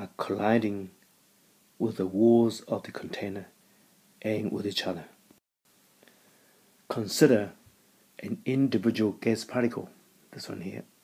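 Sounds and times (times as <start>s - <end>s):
man speaking: 0.0s - 1.0s, 1.8s - 3.6s, 4.2s - 5.2s, 6.9s - 7.6s, 8.2s - 10.9s.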